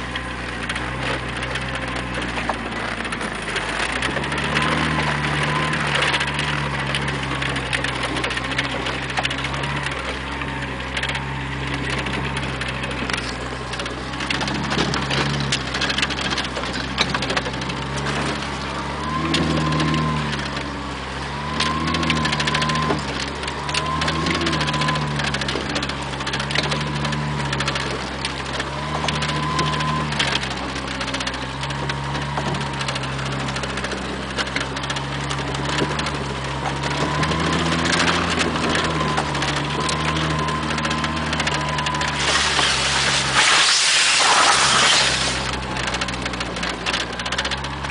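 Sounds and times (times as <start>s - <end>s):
engine revving: 0.0s - 47.9s.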